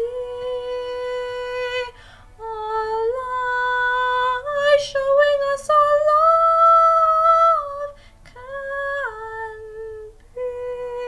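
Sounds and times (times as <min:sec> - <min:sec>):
woman singing long notes: 0:00.0 - 0:11.0
woman taking a breath: 0:02.0 - 0:02.4.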